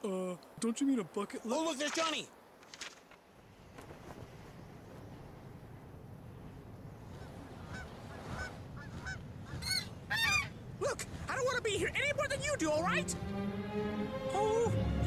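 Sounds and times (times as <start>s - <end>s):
steady low rush: 11.8s - 15.0s.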